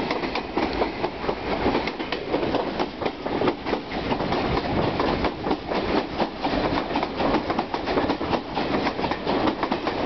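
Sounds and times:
train rumble: 0.0s - 10.0s
train wheels clacking over rail joints: 0.0s - 10.0s.

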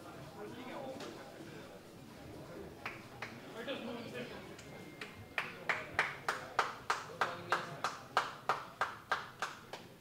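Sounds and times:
rhythmic hand clapping: 2.8s - 3.5s, 4.6s - 10.0s.

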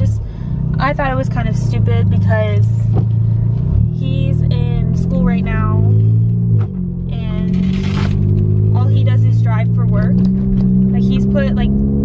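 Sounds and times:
car engine drone in cabin: 0.0s - 12.0s.

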